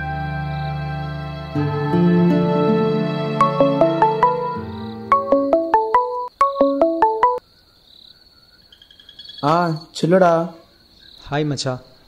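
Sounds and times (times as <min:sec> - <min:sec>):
smartphone ringtone: 0:03.4 - 0:07.4.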